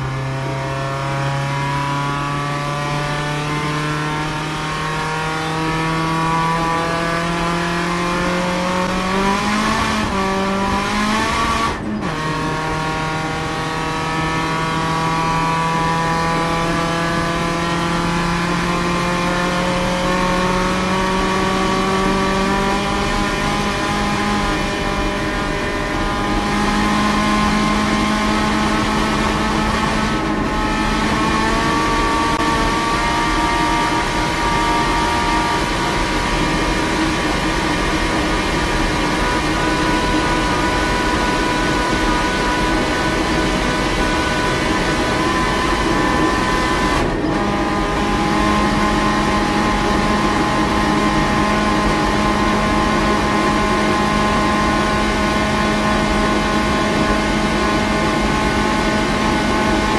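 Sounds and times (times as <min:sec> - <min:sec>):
turbocharged car engine under full load: 0:00.0 - 0:59.9.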